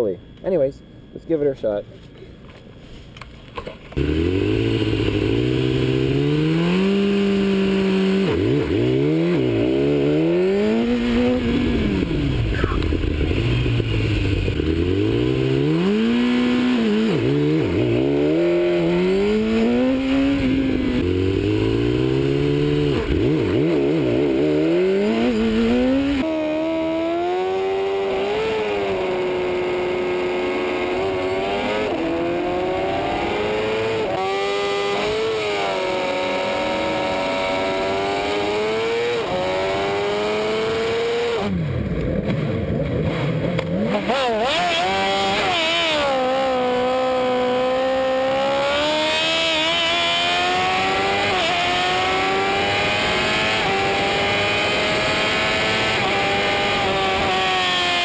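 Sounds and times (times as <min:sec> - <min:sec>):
motorcycle accelerating: 0:03.9 - 0:58.0
motorcycle engine revving: 0:03.9 - 0:58.0.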